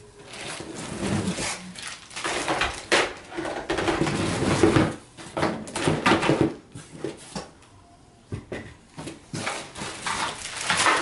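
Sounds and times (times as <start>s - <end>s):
plastic parts rustling and knocking: 0.3s - 7.5s, 8.3s - 11.0s.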